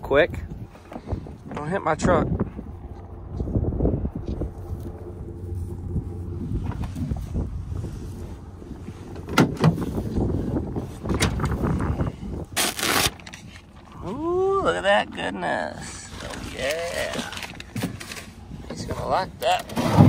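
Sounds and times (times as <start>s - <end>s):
steady low rumble: 0.0s - 19.6s.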